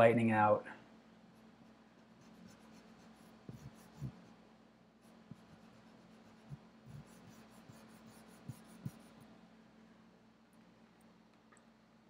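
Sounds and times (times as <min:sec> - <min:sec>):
eraser scrubbing on paper: 0:01.6 - 0:04.3, 0:05.1 - 0:09.2.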